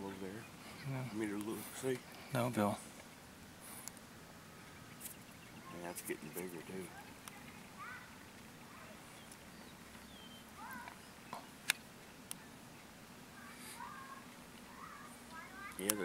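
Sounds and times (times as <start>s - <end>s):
bird chirps: 4.4s - 11.6s
sharp clicks: 11.6s - 12.4s.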